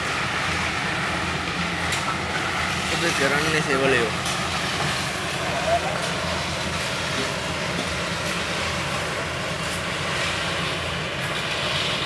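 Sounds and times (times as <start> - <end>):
concrete mixer running: 0.0 - 12.0.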